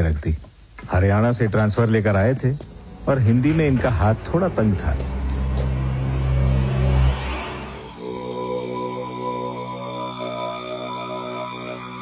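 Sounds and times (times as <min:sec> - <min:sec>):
deep bass swell: 0:03.0 - 0:11.5
held drone with overtones: 0:03.3 - 0:12.0.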